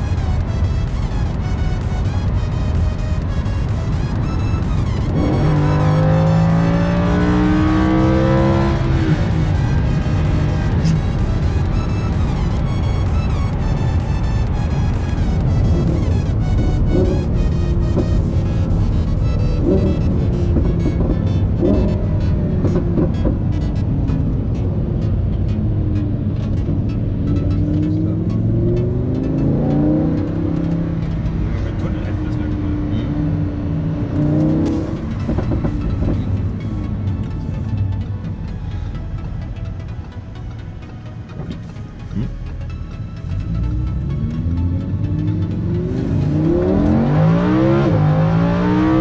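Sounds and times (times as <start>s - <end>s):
background music: 0.0s - 49.0s
car engine: 0.0s - 49.0s
road noise: 0.0s - 49.0s.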